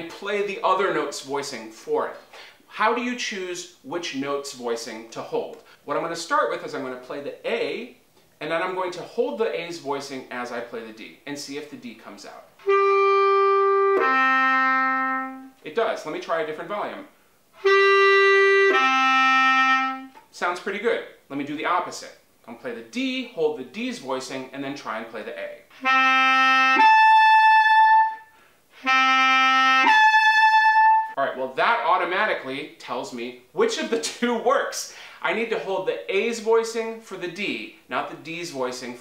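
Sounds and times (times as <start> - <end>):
bass clarinet sustained notes: 12.6 - 15.6, 17.6 - 20.2, 25.7 - 31.4.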